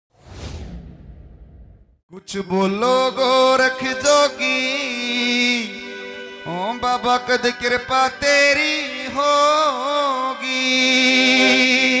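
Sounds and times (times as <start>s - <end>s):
whoosh with low rumble: 0.1s - 2.0s.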